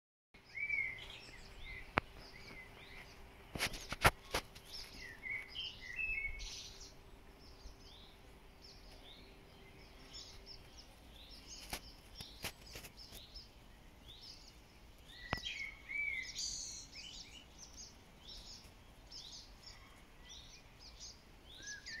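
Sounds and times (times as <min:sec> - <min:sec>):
swallows twittering: 0:00.4 - 0:22.0.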